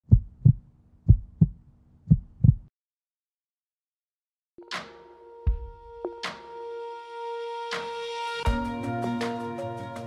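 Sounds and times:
heartbeat thumps: 0:00.0 - 0:02.7.

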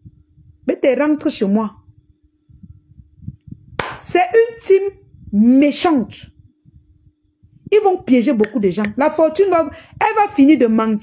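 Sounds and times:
steady low hum: 0:00.0 - 0:11.0
woman speaking: 0:00.6 - 0:01.9, 0:03.9 - 0:06.4, 0:07.7 - 0:11.0
faint low thumps: 0:01.8 - 0:04.0, 0:05.0 - 0:05.6, 0:06.2 - 0:08.1.

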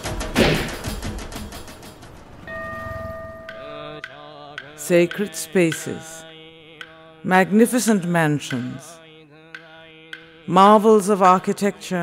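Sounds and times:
steady ringing tone: 0:02.4 - 0:04.3
person chanting: 0:03.2 - 0:12.0.

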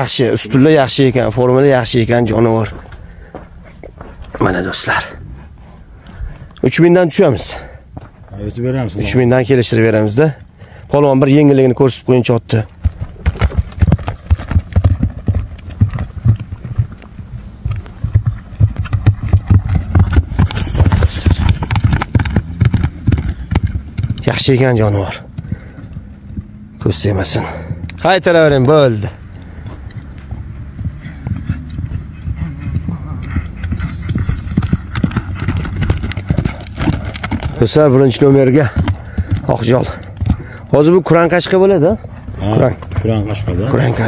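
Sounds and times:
horse hoofbeats on stony ground: 0:00.0 - 0:05.2, 0:06.2 - 0:44.0.

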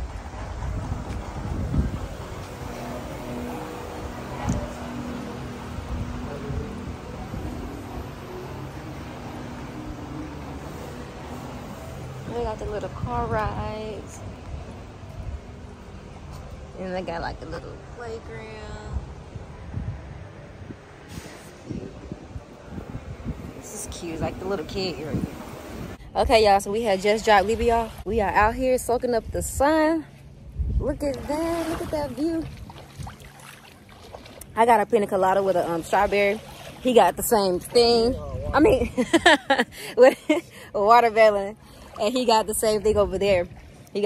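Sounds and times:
wind buffeting microphone: 0:00.0 - 0:40.0, 0:40.9 - 0:44.0.

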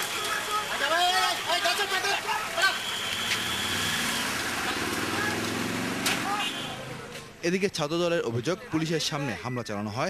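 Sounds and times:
crowd voices and shouts: 0:00.0 - 0:10.0.

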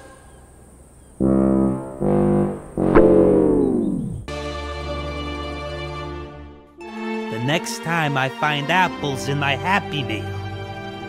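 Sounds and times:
held brass note: 0:01.2 - 0:04.3.

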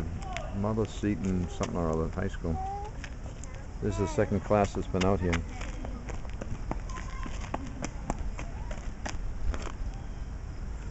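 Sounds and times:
faint child's voice: 0:02.5 - 0:04.3, 0:06.8 - 0:07.6, 0:08.4 - 0:08.9.

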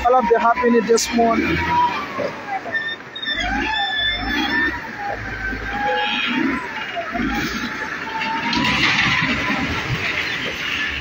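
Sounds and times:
distant voices calling: 0:00.0 - 0:11.0.

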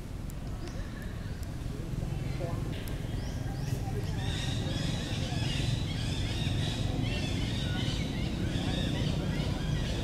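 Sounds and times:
high chirping calls: 0:03.0 - 0:10.0.

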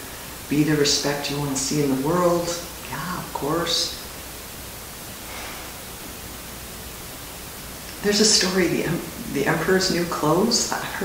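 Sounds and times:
static-like background hiss: 0:00.0 - 0:11.0.

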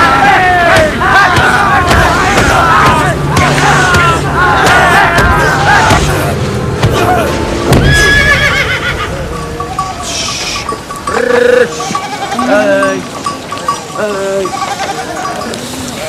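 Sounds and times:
sheep bleating: 0:07.9 - 0:13.0, 0:14.0 - 0:16.0
small bell clinking: 0:09.3 - 0:16.0.

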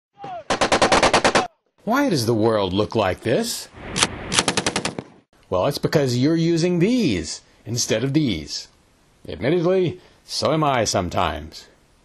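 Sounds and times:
machine gun burst: 0:04.3 - 0:05.1.

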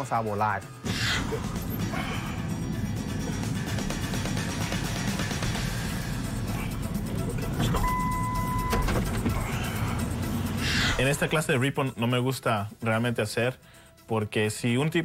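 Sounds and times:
background music: 0:00.0 - 0:15.0
high beep: 0:07.8 - 0:08.9.

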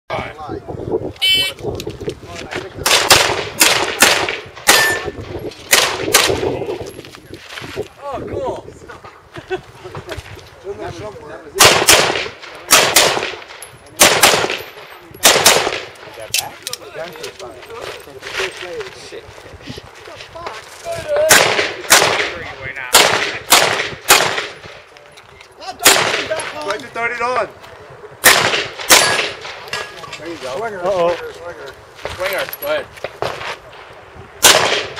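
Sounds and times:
handgun shots: 0:02.8 - 0:05.1, 0:11.6 - 0:16.5, 0:28.2 - 0:29.6, 0:34.4 - 0:34.9
faint gunshot cracks: 0:34.4 - 0:34.9.

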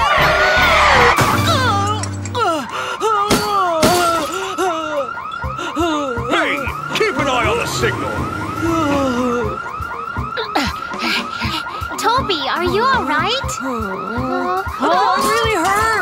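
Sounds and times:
warbling siren alarm: 0:04.0 - 0:15.8.

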